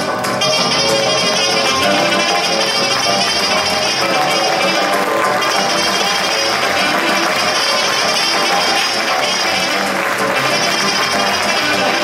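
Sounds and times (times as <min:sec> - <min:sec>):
folk orchestra playing: 0:00.0 - 0:12.0.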